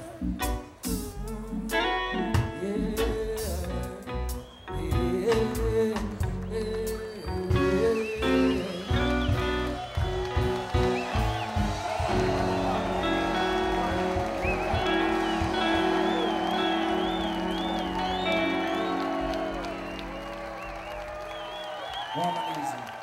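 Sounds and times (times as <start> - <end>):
reggae band playing: 0.0 - 21.7
crowd cheering: 6.0 - 23.0.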